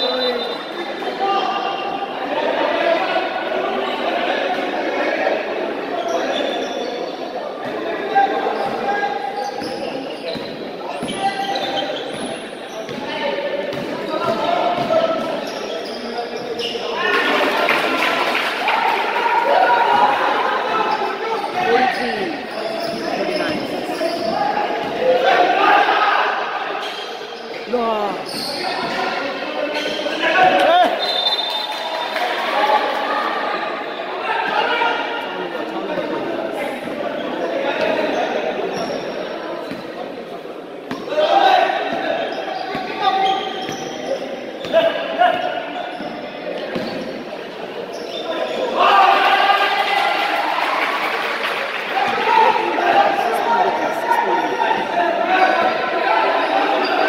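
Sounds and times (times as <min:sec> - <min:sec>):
basketball bouncing on court: 0:46.7 - 0:47.1.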